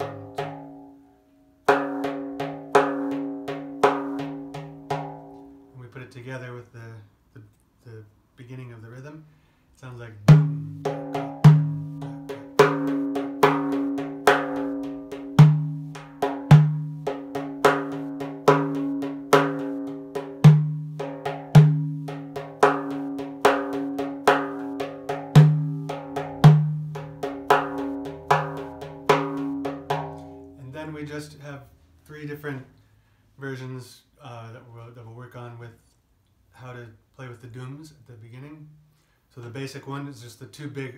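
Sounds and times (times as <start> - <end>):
hand-played frame drum: 0.0 - 1.0, 1.6 - 5.5, 10.3 - 31.4.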